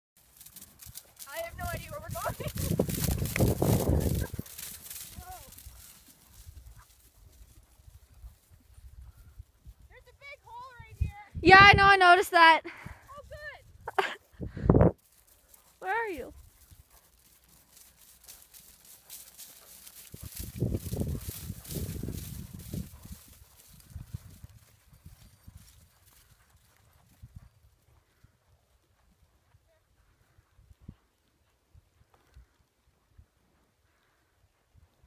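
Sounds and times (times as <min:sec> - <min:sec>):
horse hoofbeats cantering: 0:00.2 - 0:09.2, 0:15.0 - 0:30.4.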